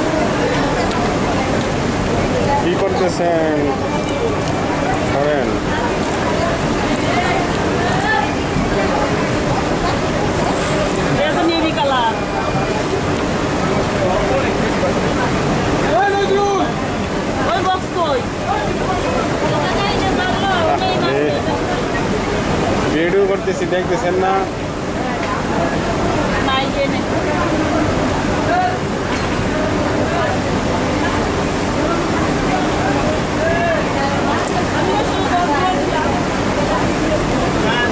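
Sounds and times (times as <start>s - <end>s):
loud rushing factory noise: 0.0s - 37.9s
voices talking: 0.0s - 37.9s
workroom background noise: 0.0s - 37.9s.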